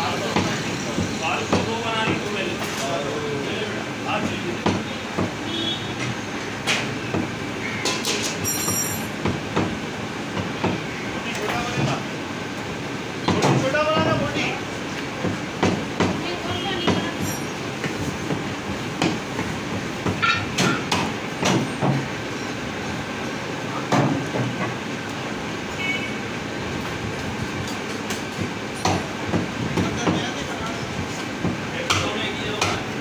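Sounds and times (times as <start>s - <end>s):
steady background din: 0.0s - 33.0s
cleaver chopping meat on wood: 19.0s - 22.1s, 31.4s - 32.9s.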